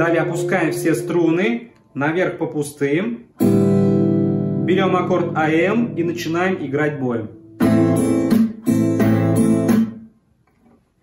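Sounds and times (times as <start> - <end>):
acoustic guitar chord strummed: 0.0 - 1.7, 3.4 - 6.6, 7.3 - 10.1.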